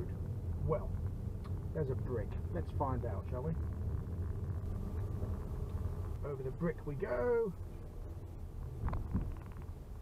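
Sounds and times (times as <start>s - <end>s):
road and engine rumble in car cabin: 0.0s - 10.0s.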